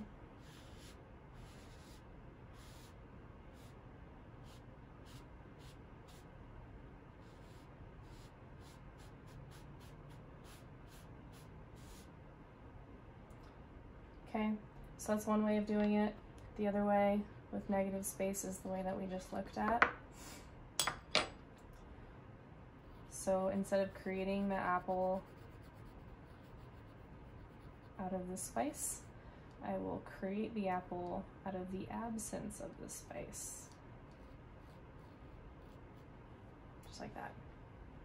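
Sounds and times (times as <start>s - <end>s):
cotton ball scratching on board: 0.4s - 3.8s, 24.4s - 28.0s.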